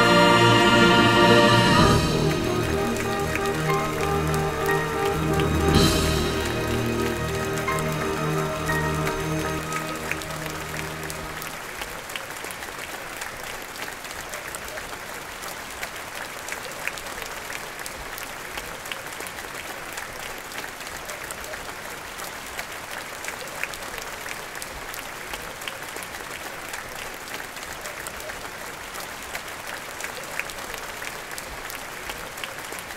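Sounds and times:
orchestra held chord: 0:00.0 - 0:11.7
audience applauding: 0:00.0 - 0:32.9.

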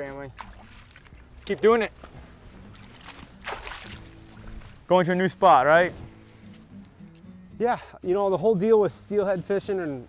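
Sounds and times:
faint background music: 0:00.0 - 0:10.0
river water splash: 0:00.3 - 0:04.9.

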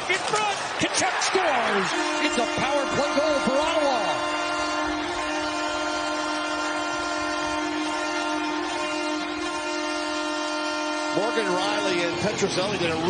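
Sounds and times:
arena goal horn: 0:01.4 - 0:12.3.

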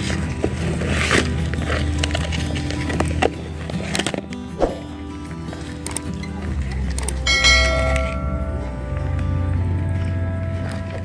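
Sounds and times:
background music: 0:00.0 - 0:11.0
bell chime: 0:07.2 - 0:08.9.

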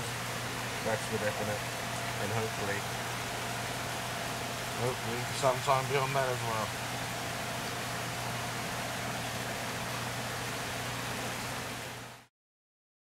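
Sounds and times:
steady hiss: 0:00.0 - 0:12.2
low steady hum: 0:00.0 - 0:12.3.

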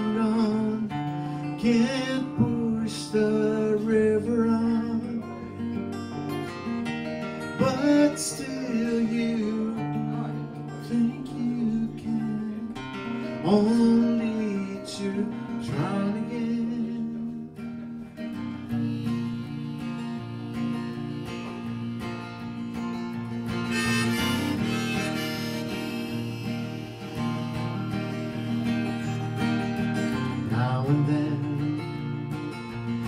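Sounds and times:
acoustic guitar accompaniment: 0:00.0 - 0:33.0
harmonica solo: 0:18.0 - 0:30.6.

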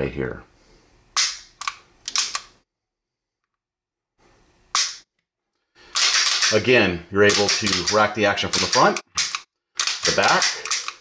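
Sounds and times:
pistol action clicks: 0:08.6 - 0:11.0.

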